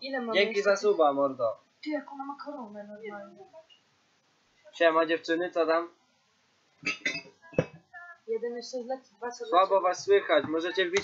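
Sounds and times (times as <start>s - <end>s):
muffled noises: 6.8s - 8.3s, 9.7s - 11.0s.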